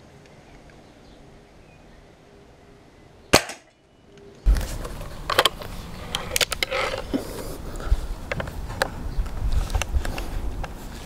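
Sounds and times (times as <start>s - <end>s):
outdoor background noise: 0.0s - 11.0s
air rifle shot: 3.3s - 3.7s.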